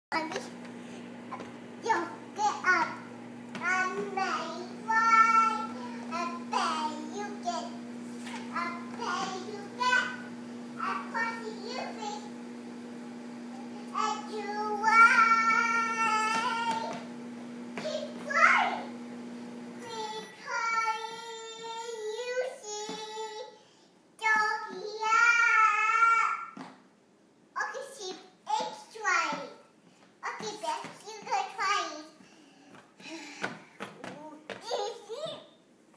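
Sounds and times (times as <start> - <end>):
faint hum: 0.2 - 26.2
toddler girl singing: 1.3 - 12.3, 13.5 - 17.1, 19.8 - 26.6, 27.8 - 32.2.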